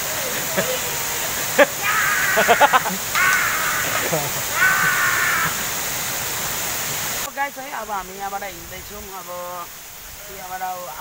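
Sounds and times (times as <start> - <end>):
waterfall rushing: 0.0 - 11.0
loud harsh calls: 0.6 - 6.0.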